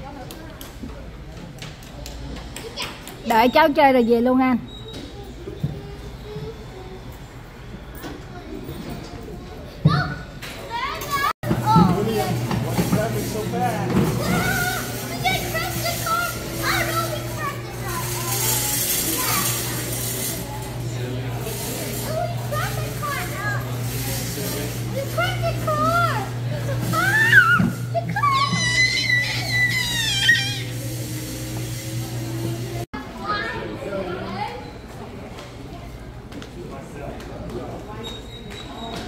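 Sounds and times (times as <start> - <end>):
kiddie ride low hum: 0.0 - 36.3
young children chattering: 4.6 - 36.3
child squealing: 27.0 - 30.9.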